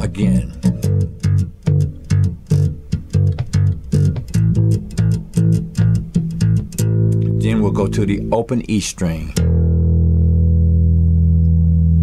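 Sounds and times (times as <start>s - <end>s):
slap bass guitar notes: 0.0s - 12.0s.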